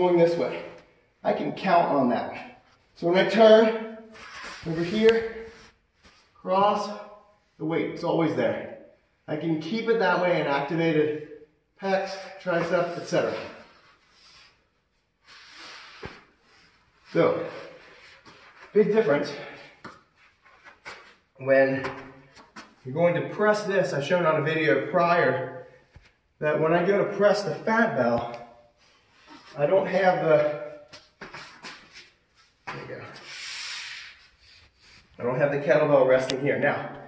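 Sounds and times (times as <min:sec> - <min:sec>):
rubbing hissing noise: 0:04.2 - 0:06.3, 0:15.2 - 0:18.8, 0:31.2 - 0:35.2.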